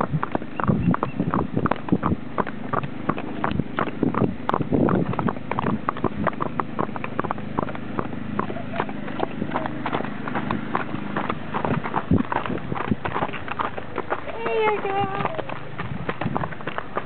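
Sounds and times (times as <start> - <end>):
horse hooves clip-clopping on pavement: 0.0 - 17.0.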